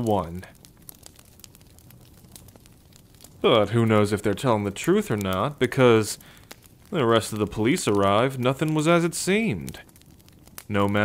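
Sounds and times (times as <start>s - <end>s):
campfire crackling pops: 0.0s - 11.0s
low hiss: 0.0s - 11.0s.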